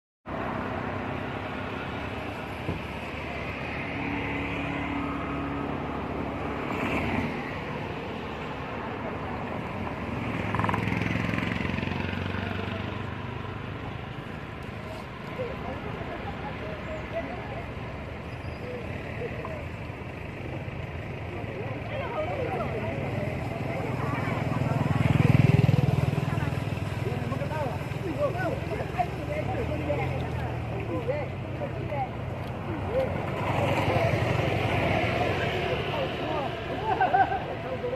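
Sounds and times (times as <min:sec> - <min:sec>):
road traffic passing: 0:00.3 - 0:37.9.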